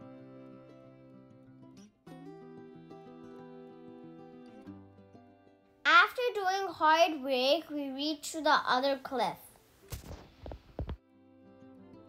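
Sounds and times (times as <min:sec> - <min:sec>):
soft instrumental music: 0:00.0 - 0:05.8, 0:09.8 - 0:12.0.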